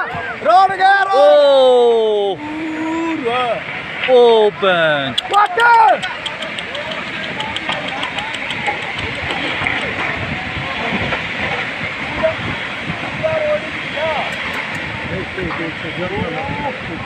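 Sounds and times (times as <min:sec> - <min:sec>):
steady rushing noise: 0:00.0 - 0:17.0
faint voices of onlookers: 0:04.0 - 0:17.0.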